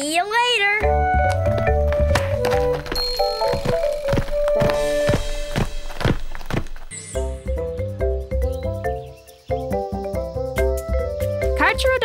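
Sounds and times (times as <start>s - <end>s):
cartoon background music: 0.8s - 2.8s, 6.9s - 12.0s
cartoon footsteps thudding: 0.8s - 6.9s.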